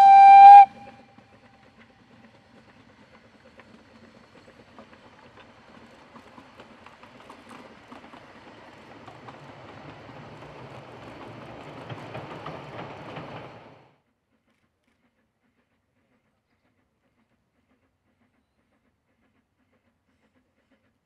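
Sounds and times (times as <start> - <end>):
train wheels clicking over rail joints: 0.0 - 13.9.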